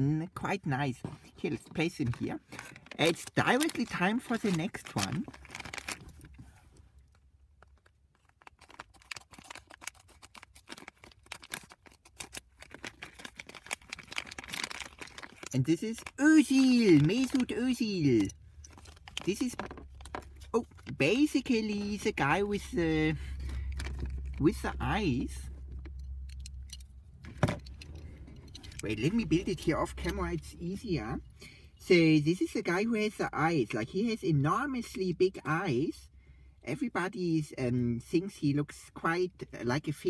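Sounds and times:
plastic foil bag crinkling: 1.8s - 6.4s, 7.6s - 25.2s.

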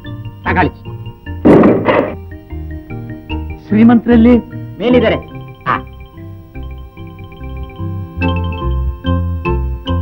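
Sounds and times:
film soundtrack music: 0.0s - 10.0s
loud heavy thud: 1.4s - 2.2s.

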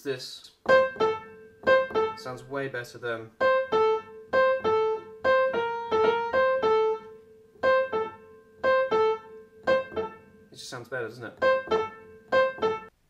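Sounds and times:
upright piano staccato notes: 0.6s - 2.4s, 3.4s - 10.4s, 11.4s - 12.9s.

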